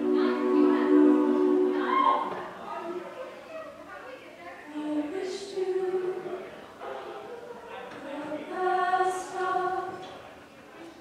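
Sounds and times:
gliding voice: 0:00.0 - 0:02.6
women's choir singing a chord: 0:00.0 - 0:02.6, 0:07.9 - 0:10.1.

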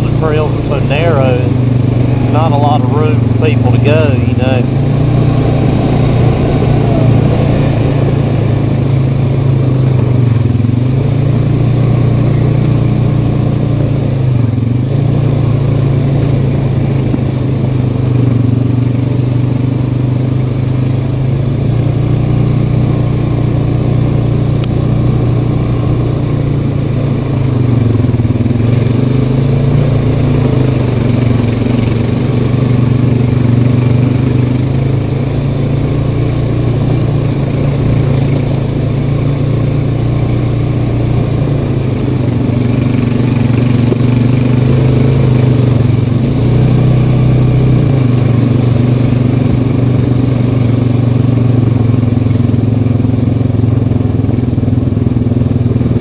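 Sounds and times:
atv engine running: 0:00.0 - 0:56.0.

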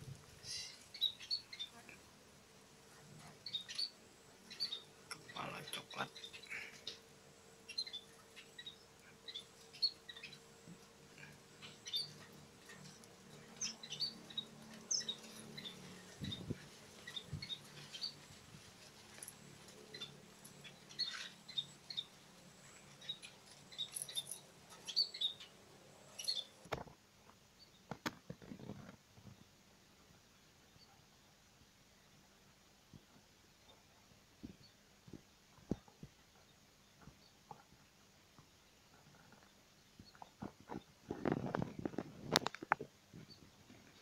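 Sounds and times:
finches chirping: 0:00.4 - 0:01.8, 0:03.2 - 0:07.1, 0:07.7 - 0:18.5, 0:19.1 - 0:26.7.

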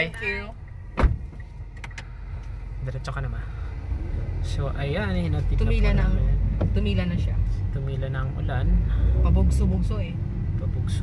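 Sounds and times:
car idling hum: 0:00.0 - 0:11.0
car door shutting: 0:00.9 - 0:02.1.

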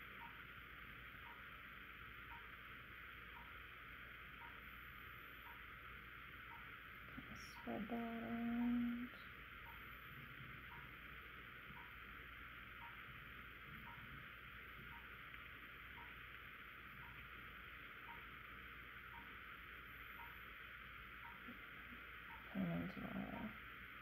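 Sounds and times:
room hiss: 0:00.0 - 0:24.0
faint regular tick: 0:00.2 - 0:00.4, 0:01.2 - 0:01.5, 0:02.2 - 0:02.6, 0:03.3 - 0:03.6, 0:04.4 - 0:04.7, 0:05.4 - 0:05.7, 0:06.4 - 0:11.0, 0:11.7 - 0:12.0, 0:12.8 - 0:17.3, 0:18.0 - 0:18.3, 0:19.1 - 0:19.4, 0:20.1 - 0:23.6.

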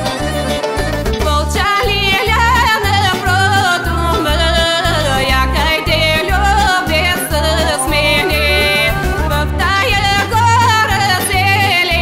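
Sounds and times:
band accompaniment with bass beat: 0:00.0 - 0:12.0
woman singing with vibrato: 0:00.0 - 0:12.0.

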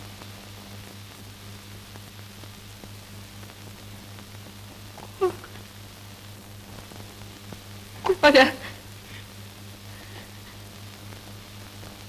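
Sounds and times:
film soundtrack hiss: 0:00.0 - 0:12.0
low constant hum: 0:00.0 - 0:12.0.

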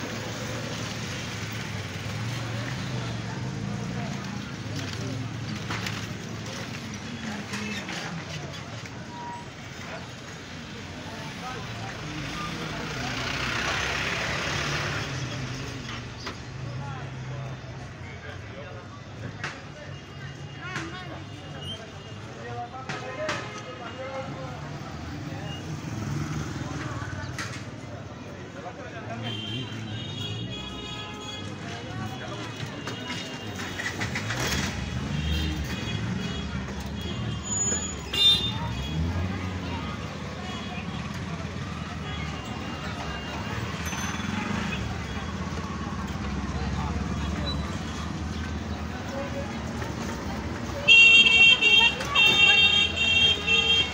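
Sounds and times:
faint voices: 0:00.0 - 0:53.9
traffic engine rumble: 0:00.0 - 0:53.9
car horn toot: 0:50.9 - 0:53.9.

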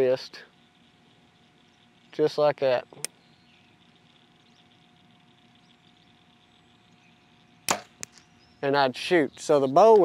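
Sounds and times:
bow string crack on release: 0:07.7 - 0:08.3.

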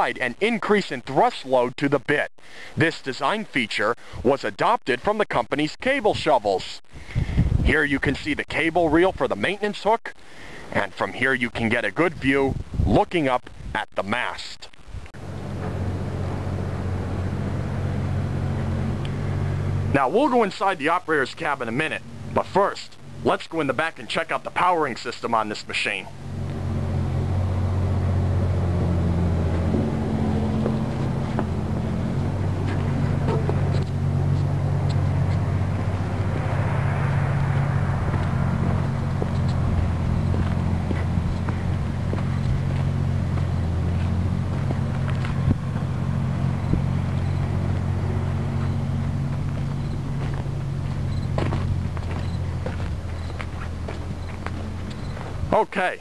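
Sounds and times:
low engine drone: 0:14.7 - 0:55.6.

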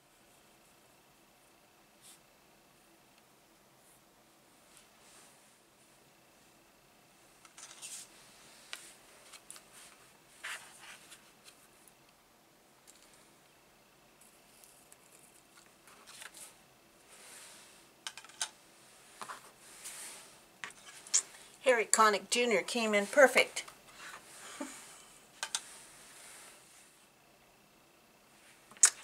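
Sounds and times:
objects clicking on cutting mat: 0:25.4 - 0:25.6.

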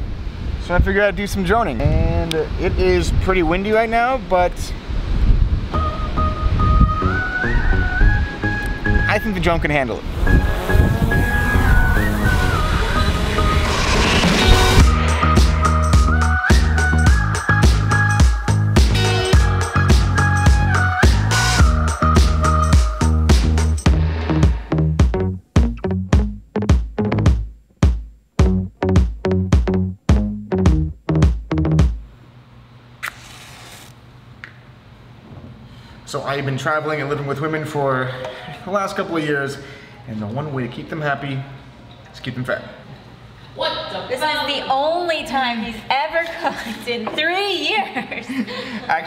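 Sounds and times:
background music gliding melody: 0:10.6 - 0:26.0
short hiss: 0:33.0 - 0:34.0.

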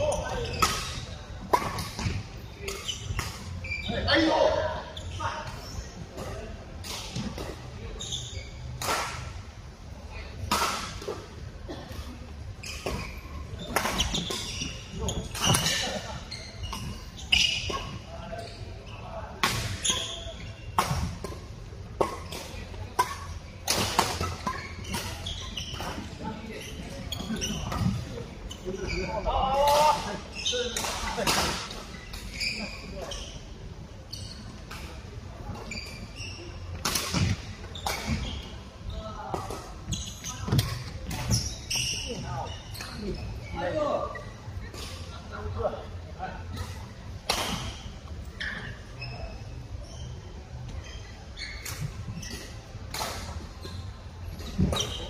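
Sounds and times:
sneakers squeaking on court floor: 0:00.0 - 0:09.3, 0:12.6 - 0:45.7, 0:46.4 - 0:55.0
low hum of hall: 0:00.0 - 0:55.0.

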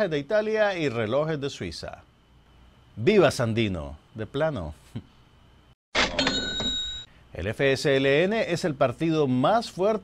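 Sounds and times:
bell ringing: 0:06.0 - 0:07.1.

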